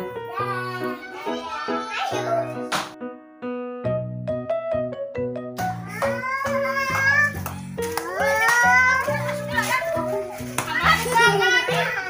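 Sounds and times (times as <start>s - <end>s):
children calling and squealing: 0.0s - 2.7s, 5.6s - 12.0s.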